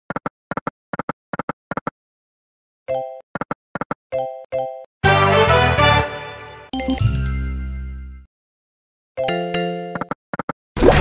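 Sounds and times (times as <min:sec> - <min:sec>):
slot machine chiming tone: 0:06.7 - 0:08.3.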